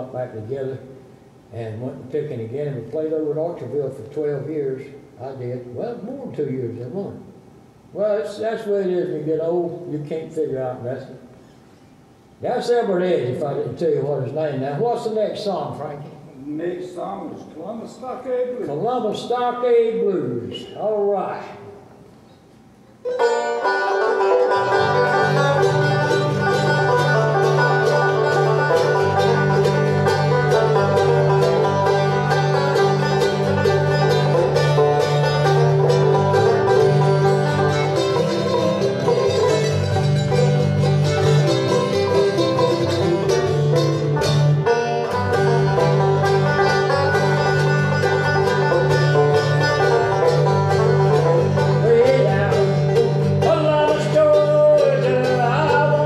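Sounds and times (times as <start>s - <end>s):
bluegrass band playing: 0.0s - 0.9s, 23.0s - 56.0s.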